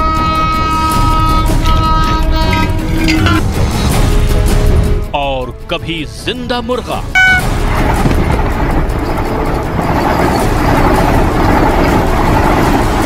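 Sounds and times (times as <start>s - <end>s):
brief high tone: 7.2s - 7.5s
train passing at speed: 7.4s - 13.0s.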